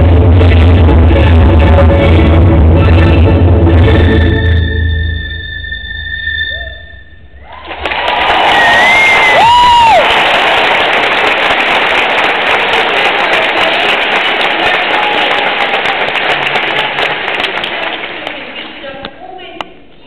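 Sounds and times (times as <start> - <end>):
shrill whistles: 4.3 - 7.3
audience applause and cheering: 7.4 - 18.6.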